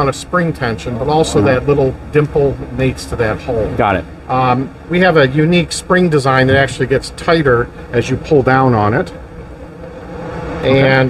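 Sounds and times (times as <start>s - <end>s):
man talking: 0.0s - 9.1s, 10.6s - 11.0s
faint steady hum: 0.0s - 11.0s
low steady rumble: 0.0s - 11.0s.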